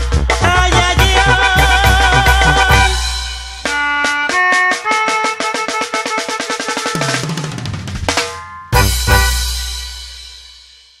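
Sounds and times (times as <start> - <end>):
live band playing: 0.0 - 10.5
drum roll: 0.0 - 11.0.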